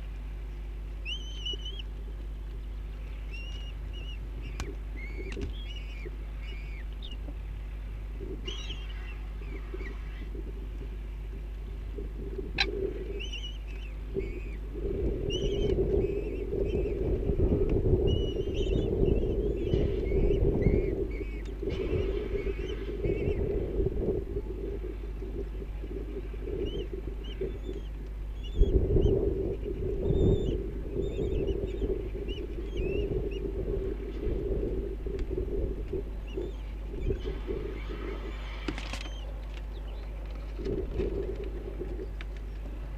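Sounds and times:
low rumbling on microphone: 0.0 - 42.9
steady low hum: 0.0 - 42.9.

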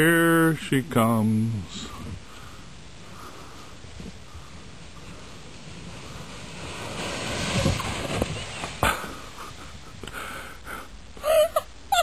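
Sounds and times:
sled scraping and spraying snow: 0.0 - 10.9.

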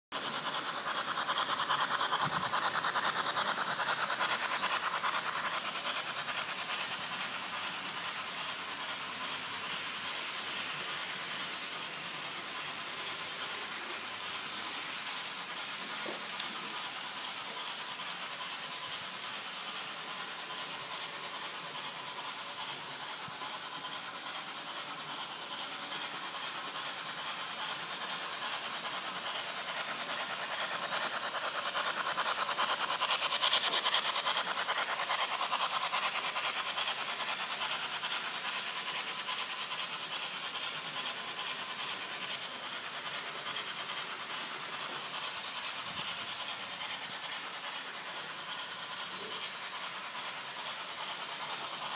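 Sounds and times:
model train rattling on track: 0.1 - 51.9.

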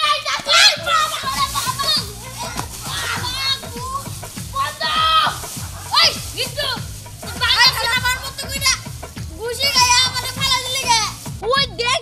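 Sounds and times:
background music: 0.0 - 12.0
boys crying and shouting: 0.0 - 12.0.

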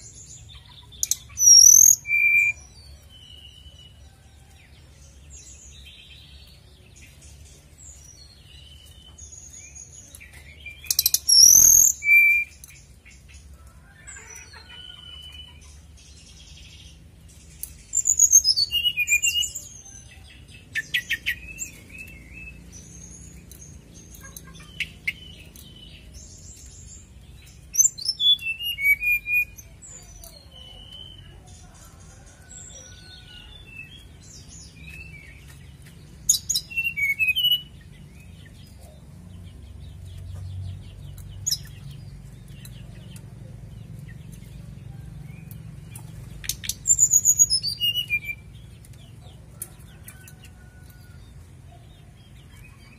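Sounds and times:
songbird singing trills and whistles: 0.0 - 4.2, 5.3 - 13.4, 14.0 - 31.8, 32.4 - 39.0, 39.7 - 49.2
soft bird chirps: 0.0 - 52.9.

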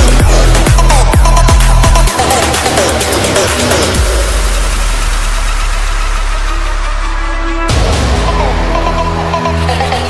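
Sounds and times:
deep bass drone: 0.0 - 10.0.

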